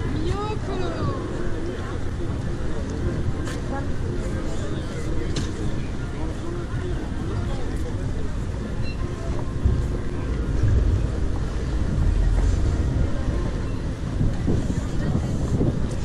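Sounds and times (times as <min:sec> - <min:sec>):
faint voices of passers-by: 0:00.0 - 0:16.0
wind buffeting microphone: 0:08.0 - 0:16.0.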